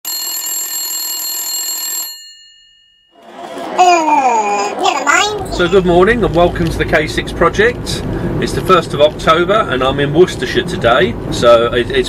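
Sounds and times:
telephone bell ringing: 0:00.1 - 0:03.8.

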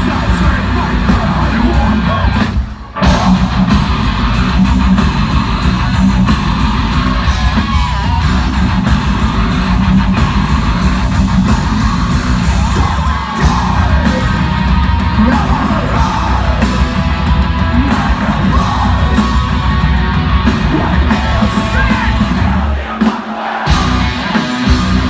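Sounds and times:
heavy metal band playing: 0:00.0 - 0:25.0.

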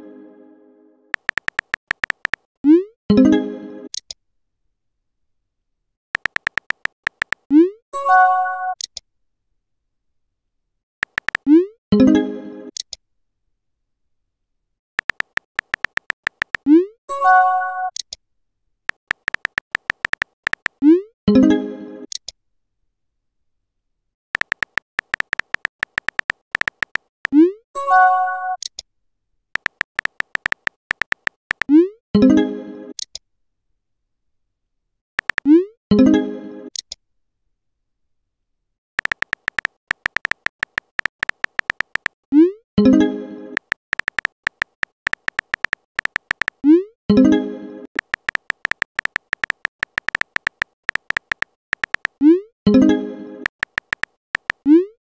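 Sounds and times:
short electronic typing beeps: 0:06.2 - 0:07.4, 0:19.0 - 0:20.8, 0:24.4 - 0:27.4, 0:29.6 - 0:31.8, 0:35.2 - 0:35.5, 0:39.0 - 0:42.2, 0:43.6 - 0:46.6, 0:48.0 - 0:52.2.

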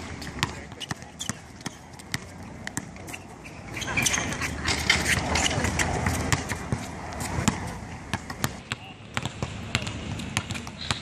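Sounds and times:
basketball bouncing on court: 0:00.0 - 0:03.0, 0:05.1 - 0:11.0.

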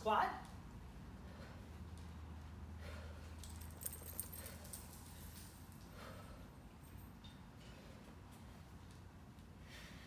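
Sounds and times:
steady low hum: 0:00.0 - 0:10.0
dog collar tags jingling: 0:03.4 - 0:05.9.

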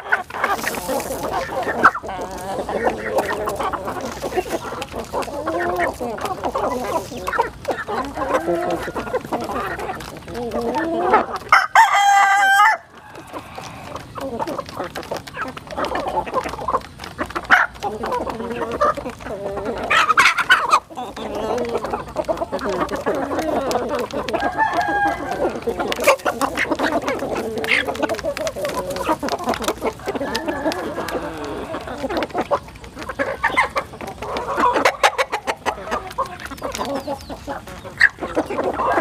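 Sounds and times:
beaks pecking grain: 0:00.0 - 0:39.0
chickens clucking: 0:00.0 - 0:39.0.

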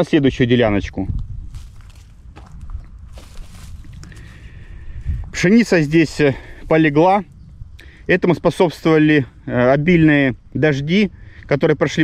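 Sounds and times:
wind rumble on microphone: 0:00.2 - 0:12.0
soft footsteps in a field: 0:00.9 - 0:09.4.

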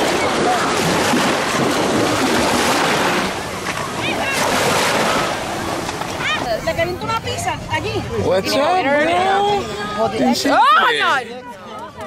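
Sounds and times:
small waves washing: 0:00.0 - 0:08.2.

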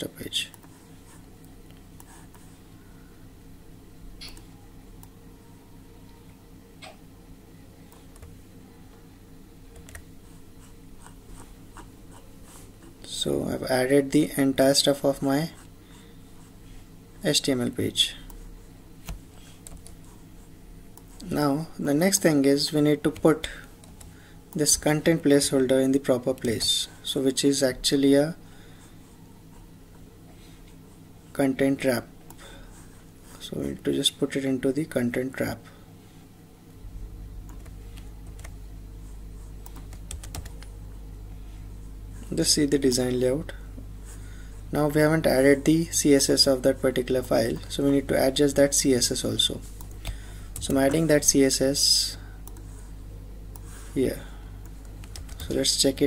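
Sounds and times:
low steady hum: 0:00.0 - 0:56.0
computer keyboard keys clicking: 0:09.8 - 0:10.1, 0:19.0 - 0:20.0, 0:37.5 - 0:38.6, 0:39.7 - 0:40.7, 0:54.6 - 0:55.6.

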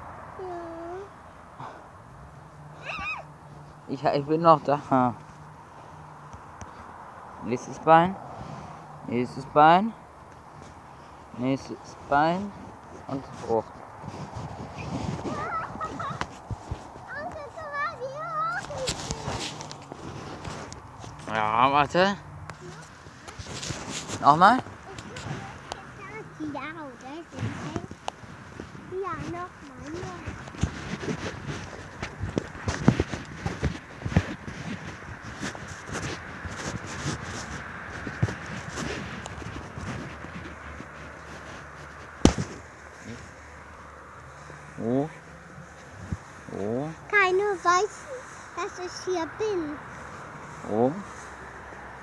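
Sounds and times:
young child's high vocal sound: 0:00.4 - 0:01.2, 0:02.8 - 0:03.3, 0:15.2 - 0:16.3, 0:17.1 - 0:19.4
footsteps on twiggy dirt path: 0:02.3 - 0:52.0.

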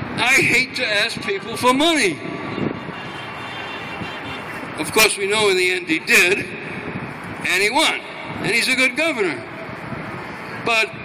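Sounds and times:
distant traffic engine drone: 0:00.0 - 0:11.0.

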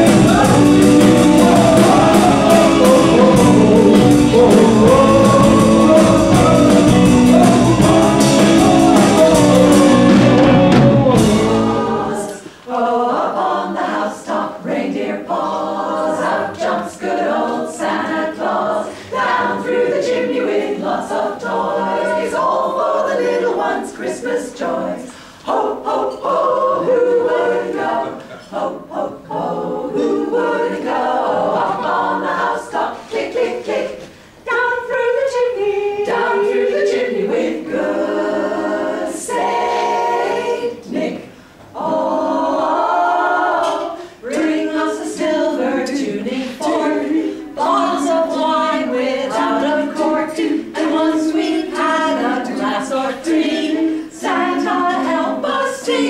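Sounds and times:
women singing a cappella: 0:00.0 - 0:56.0.

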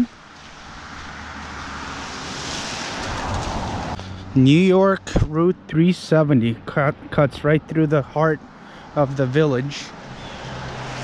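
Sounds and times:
car tyre and road noise: 0:00.0 - 0:11.0.

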